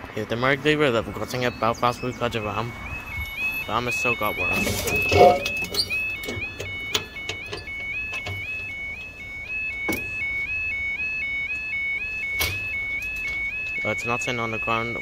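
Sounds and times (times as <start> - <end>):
level crossing alarm warbling: 0.3 - 15.0.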